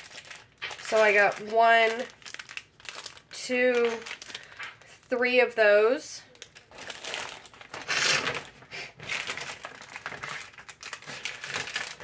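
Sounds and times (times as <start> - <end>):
plastic packets crinkling: 0.0 - 5.4, 6.3 - 12.0.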